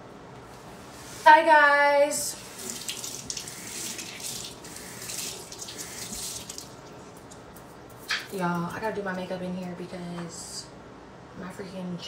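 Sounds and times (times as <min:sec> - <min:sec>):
water running from tap: 0:02.3 - 0:07.4.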